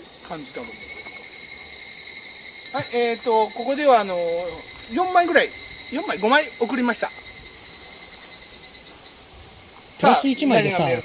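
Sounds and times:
chorus of insects: 0.0 - 11.0.

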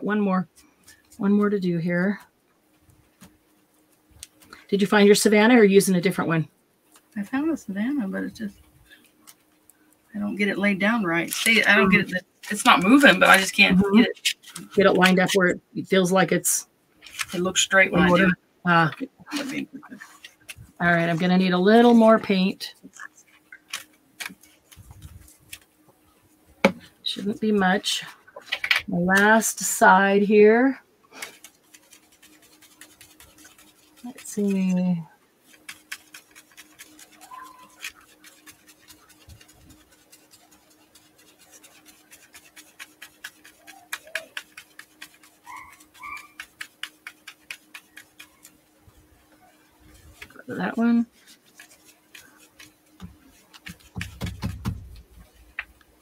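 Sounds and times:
dauber tapping through stencil: 31.2 - 34.6, 35.4 - 48.7, 51.2 - 55.9.

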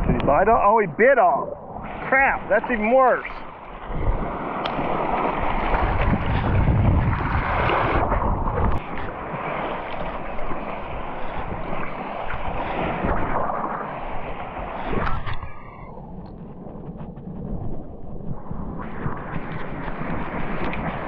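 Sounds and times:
surf washing: 0.0 - 21.0
wind on microphone: 0.0 - 21.0.

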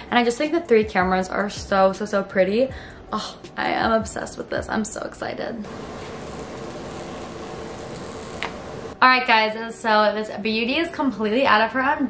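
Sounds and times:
room hiss: 5.7 - 9.0
faint hum: 5.7 - 9.1.

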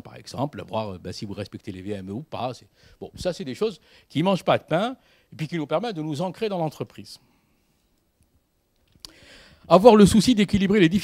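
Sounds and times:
man speaking: 0.0 - 7.2, 9.7 - 11.0
faint small clicks: 7.9 - 9.2.

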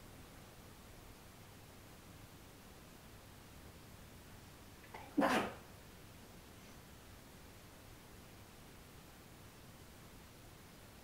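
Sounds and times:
dog bark: 5.0 - 5.6.

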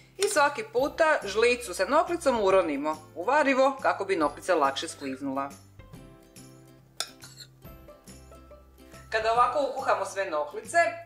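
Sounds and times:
soft background music: 0.0 - 11.0
metal spoon clinking: 7.0 - 7.6.

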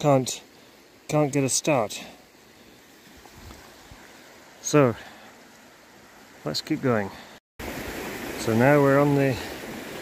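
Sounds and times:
faint outdoor hiss: 0.0 - 10.0.

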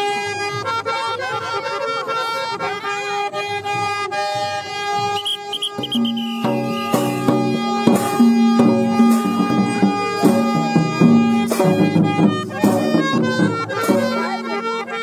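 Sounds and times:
reedy wind instrument: 0.0 - 15.0
sharp drum strikes: 5.4 - 15.0
rhythmic low repeating note: 5.7 - 15.0.

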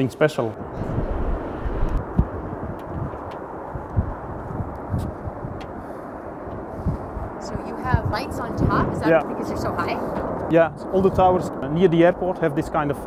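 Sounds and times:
wind buffeting microphone: 0.0 - 13.0
jet airliner roaring past: 0.6 - 13.0.

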